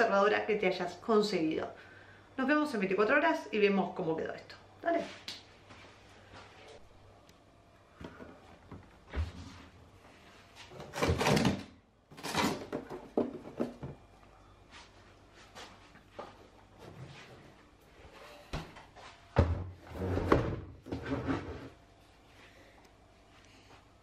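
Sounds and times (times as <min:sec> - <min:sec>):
freezer lid opening: 0:10.8 - 0:13.8.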